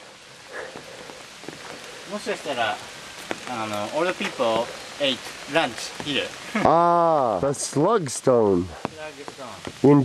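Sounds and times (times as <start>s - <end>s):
water hissing: 0.0s - 10.0s.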